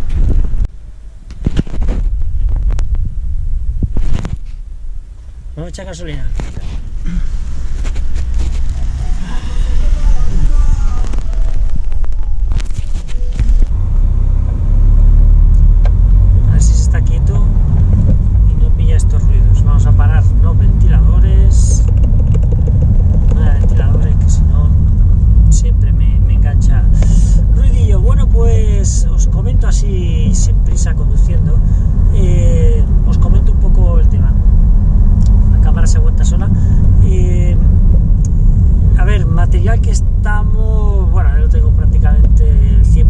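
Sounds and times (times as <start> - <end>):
car engine and road rumble: 0.0 - 43.0.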